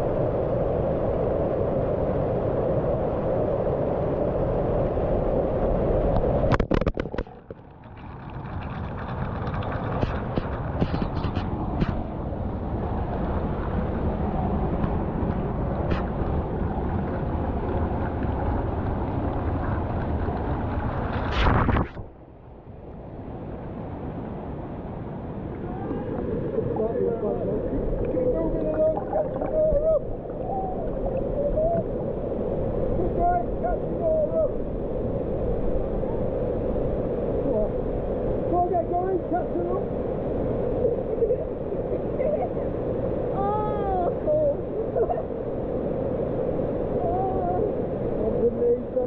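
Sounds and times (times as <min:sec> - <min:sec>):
waterfall rushing into pool: 0:25.4 - 0:34.7
water pouring onto camera: 0:27.8 - 0:31.4.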